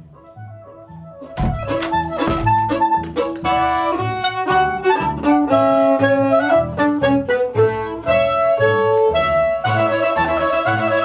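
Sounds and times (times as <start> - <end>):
violin playing bouncing rhythm: 1.4 - 11.0.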